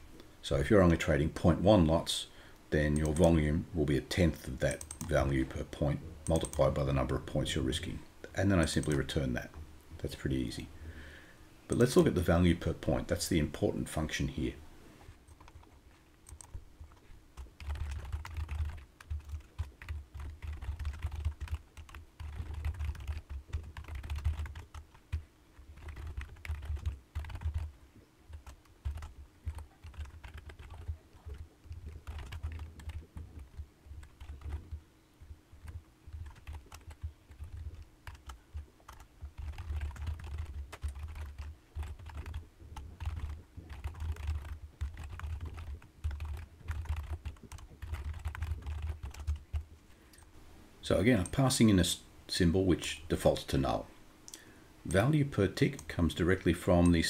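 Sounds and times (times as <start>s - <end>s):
computer keyboard typing: 2.9s - 3.4s, 4.7s - 5.6s, 6.2s - 6.8s, 8.6s - 9.2s, 15.3s - 50.3s.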